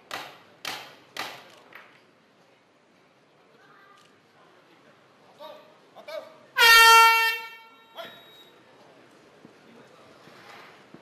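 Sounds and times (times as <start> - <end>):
loud horn blast: 6.6 - 7.9.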